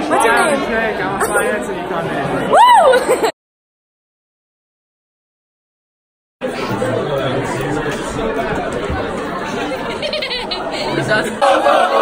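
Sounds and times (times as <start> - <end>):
crowd chatter: 0.0 - 3.3, 6.4 - 12.0.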